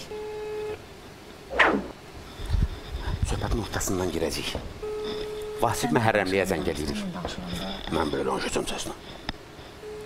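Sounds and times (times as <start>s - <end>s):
short falling swoosh: 1.5s - 2.0s
phone ringback tone: 4.8s - 6.5s, 9.8s - 10.0s.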